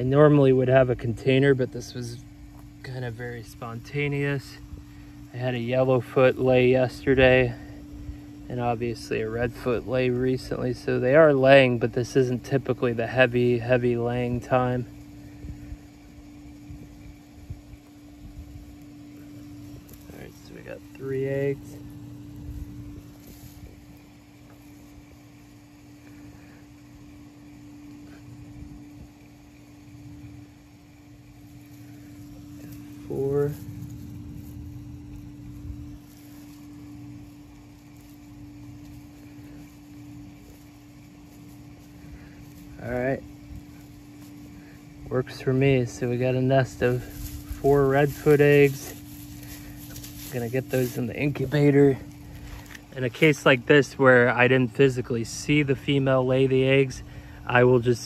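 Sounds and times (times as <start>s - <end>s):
steady low hum: 0.0s - 58.0s
hand scraping sandy soil: 30.2s - 58.0s.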